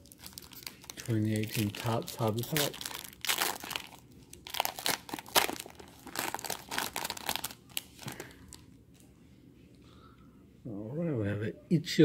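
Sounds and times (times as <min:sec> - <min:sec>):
wrapper crinkling torn open: 0:00.0 - 0:08.6.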